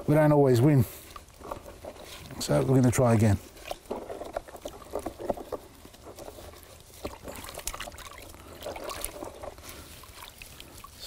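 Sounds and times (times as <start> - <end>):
water sloshing in a plastic tub: 0.0 - 11.0.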